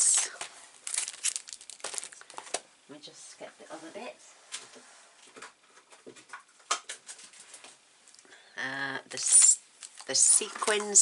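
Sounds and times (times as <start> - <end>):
plastic wrapping crinkling: 0.0 - 2.6, 9.2 - 10.8.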